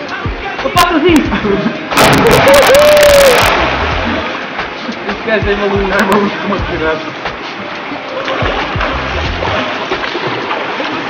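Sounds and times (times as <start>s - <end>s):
person splashing into water: 1.9s - 4.3s
onlooker shouting: 2.1s - 3.5s.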